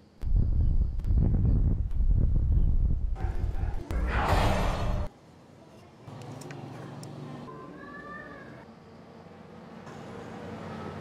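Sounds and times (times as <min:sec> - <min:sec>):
wind buffeting microphone: 0:00.2 - 0:03.8.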